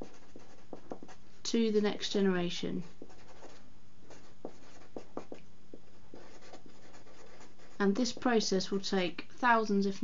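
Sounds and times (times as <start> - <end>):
marker scratching on paper: 0.0 - 1.2, 2.8 - 8.4.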